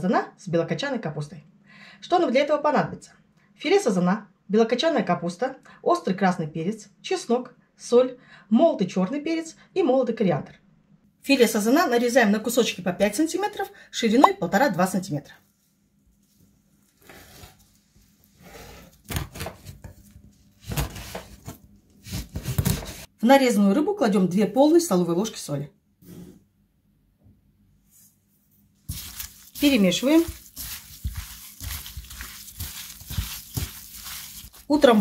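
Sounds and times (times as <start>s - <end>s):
knife slicing fish: 28.9s - 35.0s.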